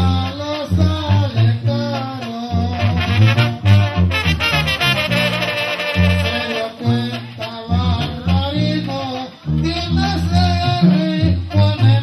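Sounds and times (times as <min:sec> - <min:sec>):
man singing into a microphone: 0:00.0 - 0:03.7, 0:06.0 - 0:12.0
brass band playing: 0:00.0 - 0:12.0.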